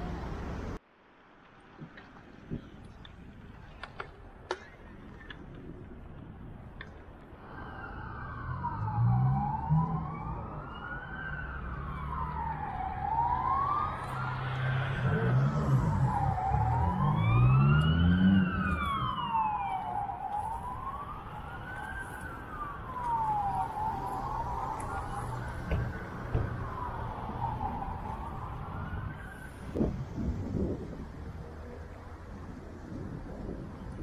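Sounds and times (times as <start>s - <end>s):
road traffic rumble: 0.0s - 34.0s
emergency vehicle siren wailing: 7.3s - 33.9s
engines revving: 11.4s - 19.4s.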